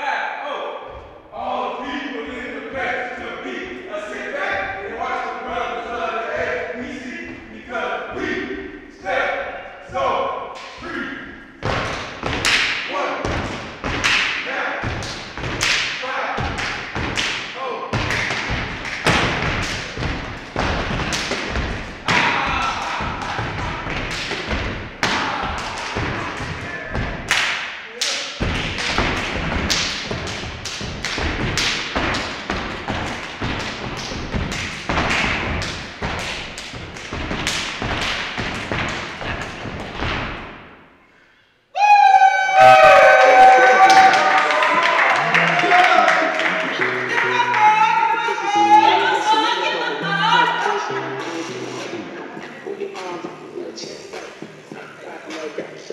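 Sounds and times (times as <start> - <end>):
stomping clapping and body slapping: 11.6 - 40.7.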